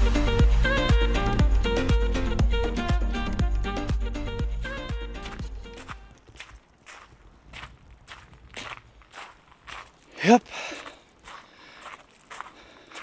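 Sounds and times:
background music: 0.0 - 6.2
footsteps on outdoor path: 5.0 - 13.0.

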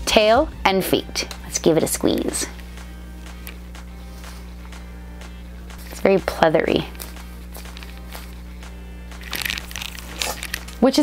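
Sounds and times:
faint background music: 0.0 - 11.0
squishy toy rustling and crinkling: 9.2 - 10.8.

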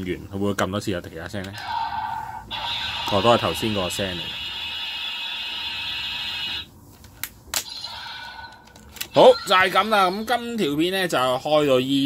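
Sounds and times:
toy electronic sound effect: 1.6 - 6.7, 7.6 - 10.4.

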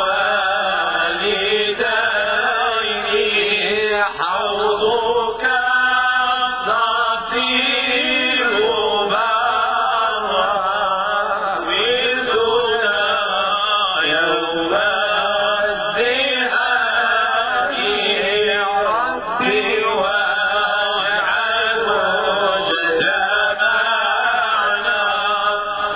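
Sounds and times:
men chanting without instruments: 0.0 - 25.9.

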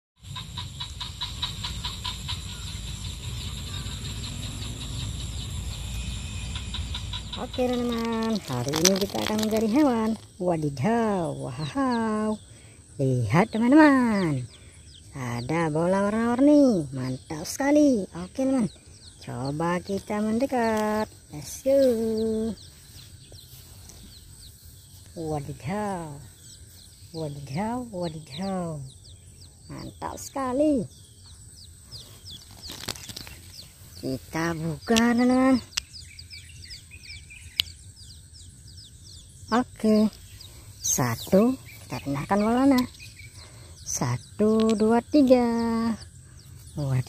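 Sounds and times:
high bird chirps: 0.2 - 12.6, 13.3 - 47.0
low rumble: 1.0 - 10.5
rabbit chewing leafy stems: 7.4 - 10.3.

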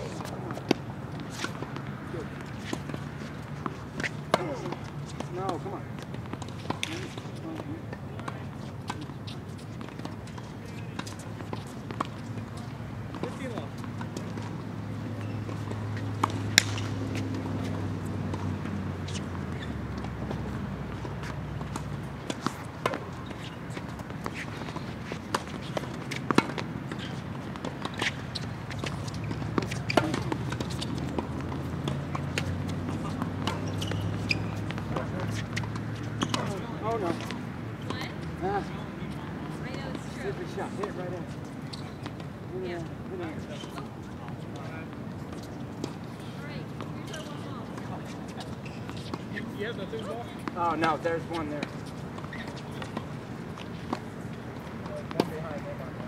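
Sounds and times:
balls bouncing on hard court: 0.0 - 56.0
tennis balls struck by rackets: 0.0 - 56.0.

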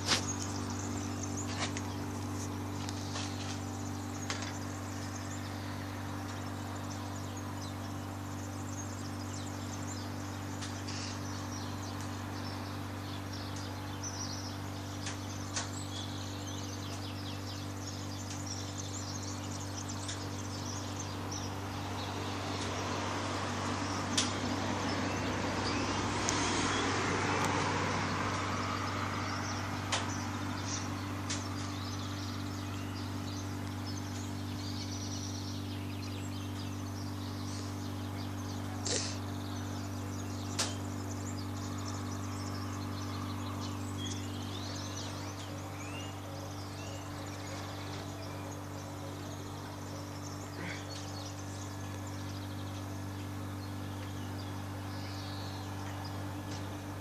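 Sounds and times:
car driving past: 21.8 - 32.4.

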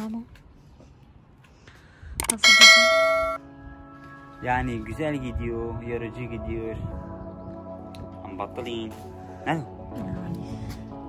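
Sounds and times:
bright bell-like chime: 2.4 - 3.4.

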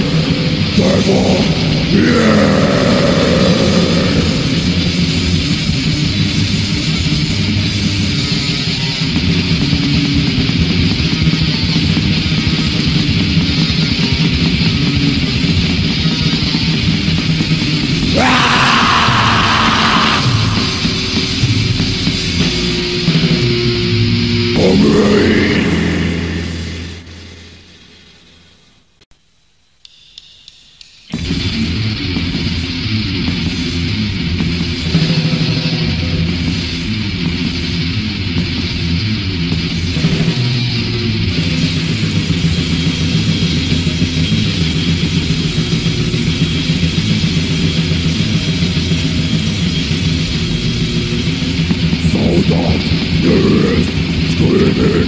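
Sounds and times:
harsh vocals: 0.0 - 5.4, 17.9 - 22.1, 24.5 - 27.7, 51.8 - 55.0
distorted guitars and drums: 0.0 - 28.6, 31.0 - 55.0.

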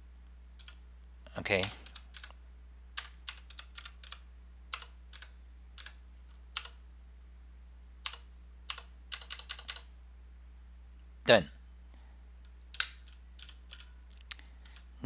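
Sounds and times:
keyboard keystrokes: 8.1 - 9.9.

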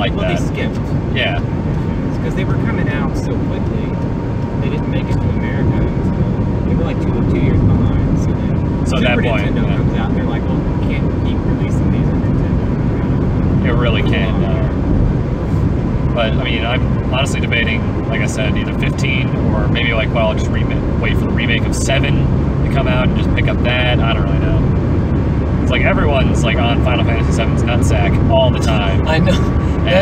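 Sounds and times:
quiet talk: 0.0 - 1.4, 2.1 - 3.9, 4.6 - 14.8, 16.2 - 24.6, 25.7 - 30.0
car road and engine rumble: 0.0 - 30.0.

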